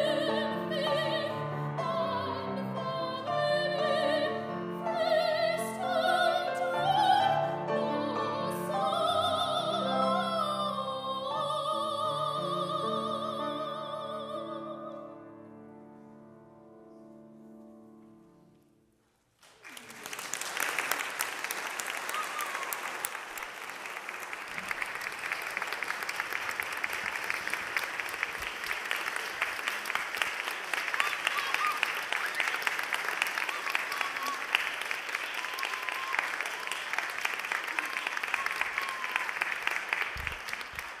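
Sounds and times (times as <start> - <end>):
audience applauding: 19.4 - 41.0.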